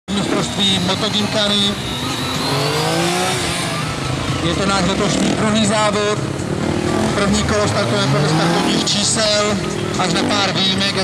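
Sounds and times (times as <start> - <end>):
people talking: 0.1 - 6.2, 7.0 - 11.0
motorcycle engine revving: 0.1 - 11.0.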